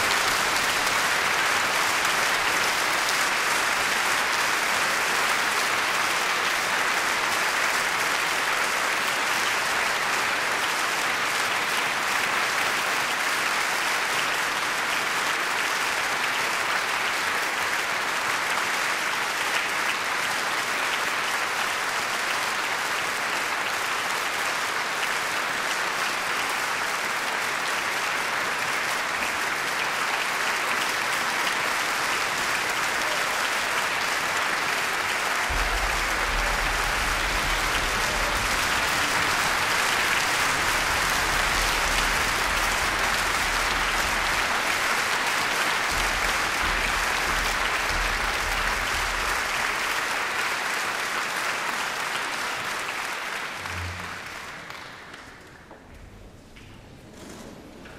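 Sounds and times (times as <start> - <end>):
audience applauding: 0.0 - 57.9.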